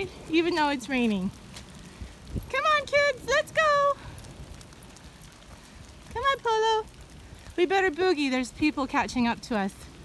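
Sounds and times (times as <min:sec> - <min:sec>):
rain hissing: 0:00.0 - 0:10.0.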